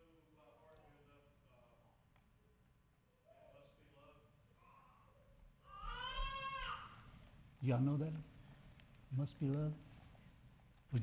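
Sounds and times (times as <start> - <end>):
young child crying: 4.6 - 7.1.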